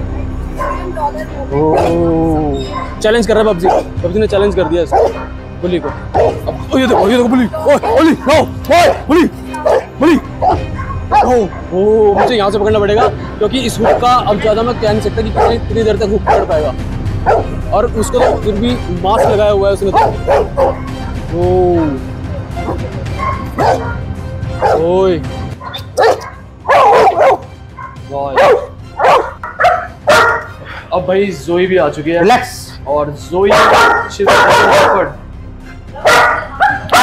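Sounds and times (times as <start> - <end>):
dogs barking: 0.5 - 21.3, 22.5 - 25.0, 25.6 - 30.9, 32.1 - 32.6, 33.4 - 37.0.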